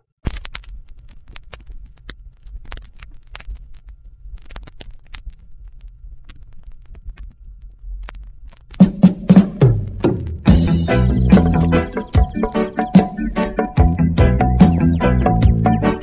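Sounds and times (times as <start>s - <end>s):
vinyl surface clicks and pops: 0.2s - 16.0s.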